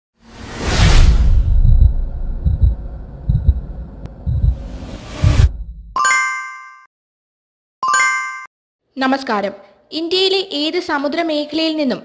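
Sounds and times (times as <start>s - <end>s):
whoosh sound effect: 0.2s - 2.4s
deep bass thuds: 1.0s - 5.9s.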